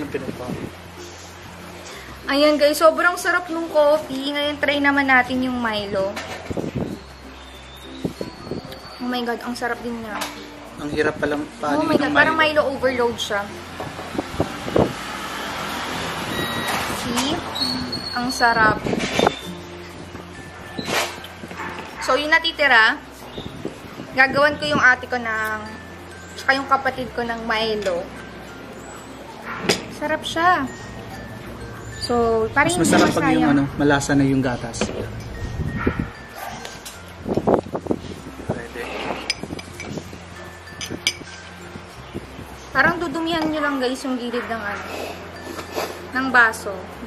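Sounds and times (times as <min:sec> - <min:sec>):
metal spoon clinking glass: 0:39.2 - 0:41.6.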